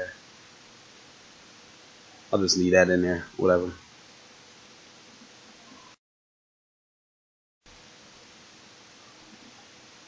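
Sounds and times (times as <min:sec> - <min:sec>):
faint room tone hiss: 0:00.0 - 0:06.0, 0:07.7 - 0:10.0.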